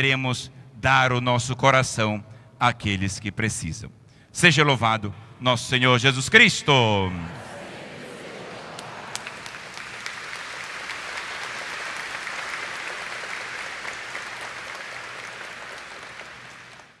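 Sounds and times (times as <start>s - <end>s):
congregation clapping: 7.2s - 17.0s.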